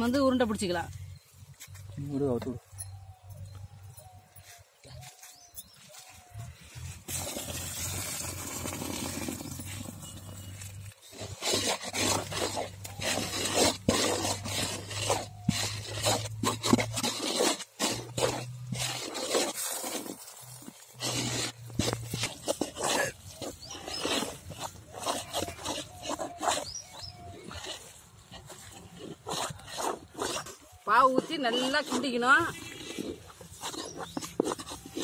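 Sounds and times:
people talking: 30.9 - 32.6.

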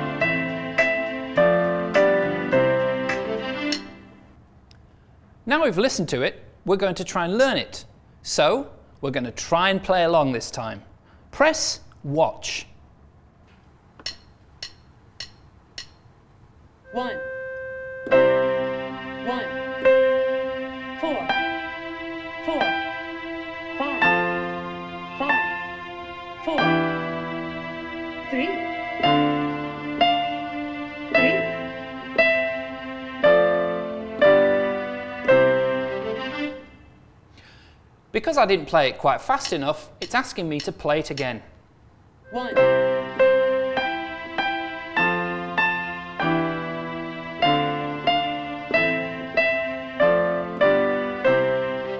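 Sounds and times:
digital piano notes: 0.0 - 4.2, 16.8 - 36.9, 42.3 - 51.9
metronome clicks: 14.0 - 16.1.

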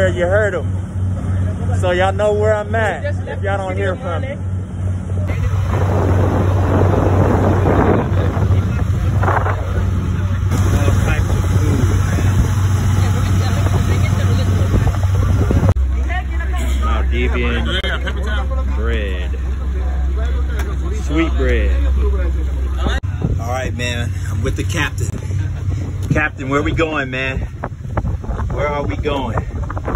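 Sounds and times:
voices talking: 0.0 - 27.7
motorboat engine droning: 0.0 - 29.9
wind: 0.0 - 29.9
rushing water: 5.3 - 15.8.

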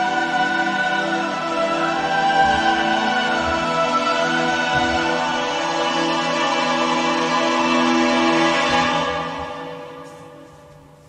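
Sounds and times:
choir singing long notes: 0.0 - 10.7.

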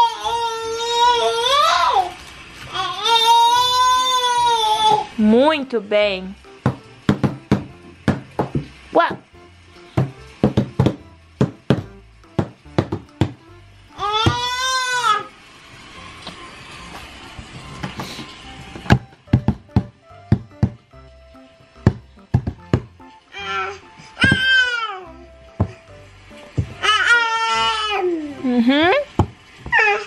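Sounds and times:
baby squealing: 29.7 - 30.0.

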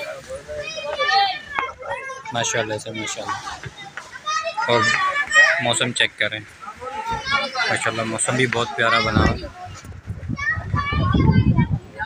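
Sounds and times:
children's voices: 0.0 - 12.0
voices talking in background: 0.0 - 12.0.

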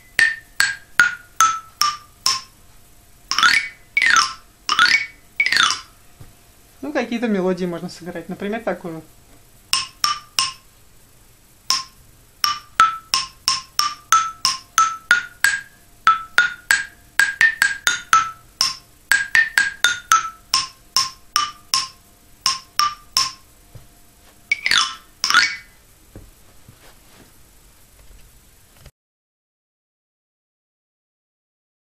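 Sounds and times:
wooden toy xylophone melody: 0.0 - 2.6, 3.2 - 6.0, 9.7 - 10.7, 11.6 - 23.5, 24.5 - 25.8.

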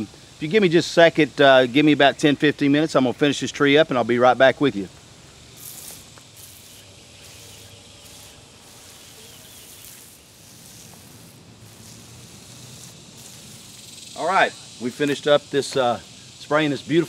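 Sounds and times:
sprayer nozzle hissing: 4.9 - 17.0.

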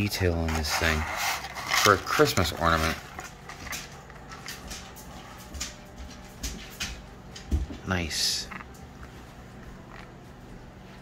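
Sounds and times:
plastic packaging crinkling: 0.5 - 4.7.

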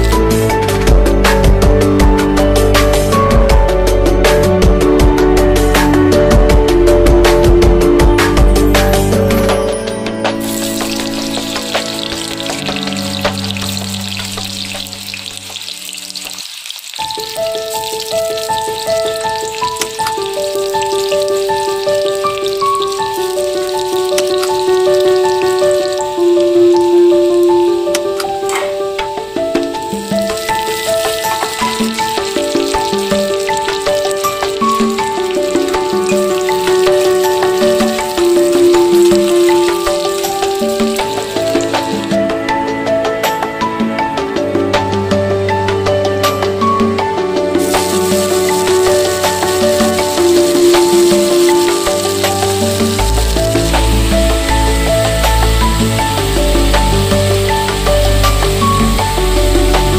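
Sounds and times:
background music: 0.0 - 59.9
onions sizzling in oil: 10.4 - 28.6, 29.2 - 42.2, 47.4 - 59.9.

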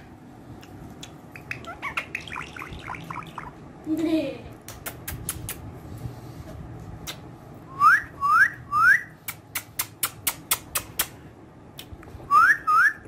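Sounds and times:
upward sweeping whistles: 7.7 - 9.1, 12.3 - 13.0.

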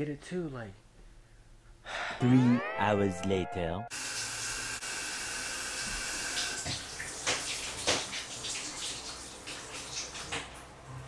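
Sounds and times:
shower running: 3.9 - 11.0.

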